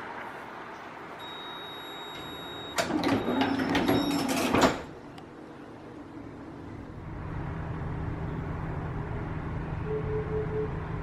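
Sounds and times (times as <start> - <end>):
high warning beep: 1.2 - 4.3
tram doors swinging shut: 2.1 - 5.0.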